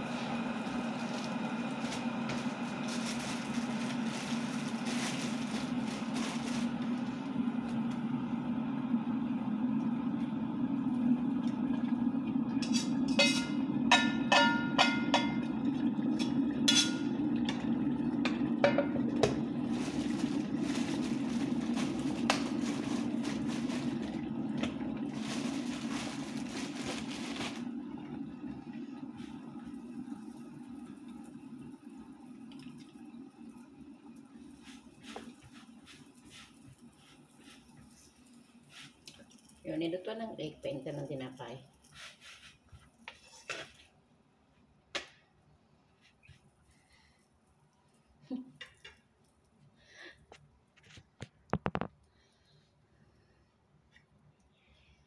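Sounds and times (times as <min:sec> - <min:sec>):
low appliance hum: 0:00.0 - 0:55.0
metal utensils clinking on pots: 0:12.6 - 0:15.4, 0:16.2 - 0:17.1.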